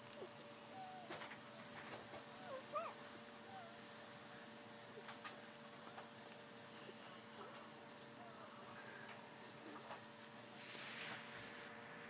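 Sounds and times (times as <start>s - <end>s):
puppies suckling and shuffling: 0.0s - 12.0s
puppies squeaking and whimpering: 2.3s - 3.8s.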